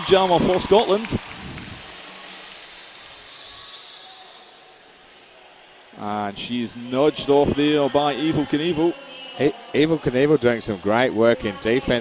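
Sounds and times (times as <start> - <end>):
sports hall crowd and skaters: 0.0 - 12.0.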